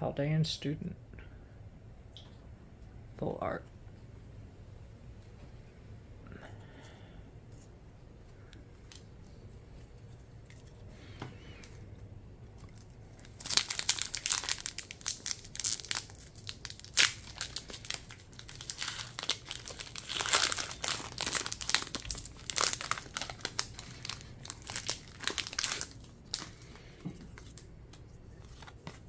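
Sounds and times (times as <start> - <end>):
foil wrapper crinkling: 12.6 - 29.0.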